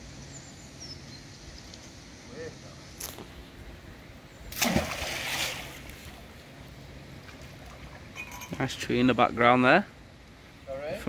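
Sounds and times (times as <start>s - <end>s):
splash in water: 4.5s - 6.2s.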